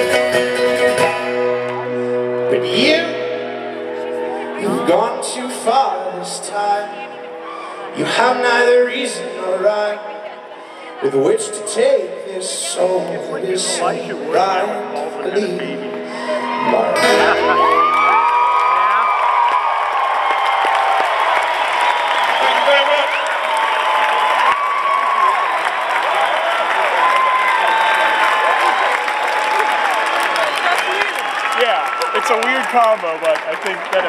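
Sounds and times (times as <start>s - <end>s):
crowd cheering and whooping: 0.8s - 2.4s, 16.2s - 34.0s.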